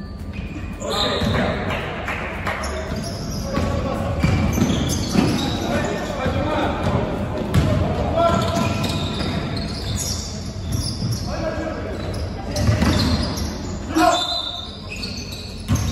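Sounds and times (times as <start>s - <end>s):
basketball dribbling on hardwood floor: 6.8s - 7.8s.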